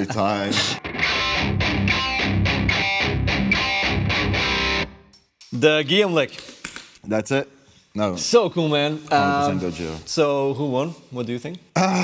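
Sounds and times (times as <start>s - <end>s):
distorted electric guitar riff: 0.6s - 5.1s.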